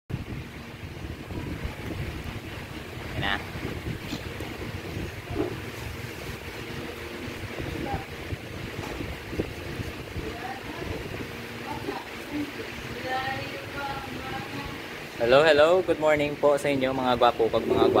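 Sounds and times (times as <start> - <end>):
wind buffeting microphone: 0.1 - 18.0.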